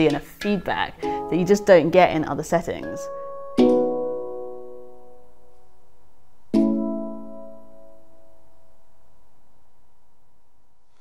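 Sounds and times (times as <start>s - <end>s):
handpan notes ringing: 0.0s - 5.3s.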